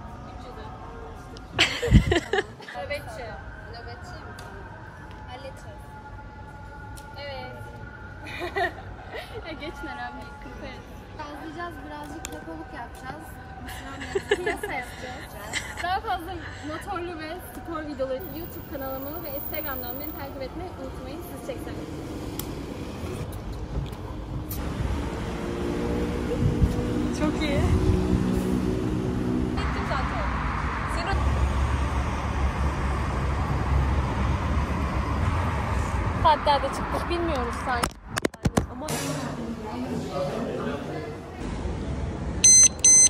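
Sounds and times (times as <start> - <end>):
steady engine hum: 18.2 - 37.7
alarm lock chirp: 42.4 - 43.0
alarm lock high beeps: 42.4 - 43.0.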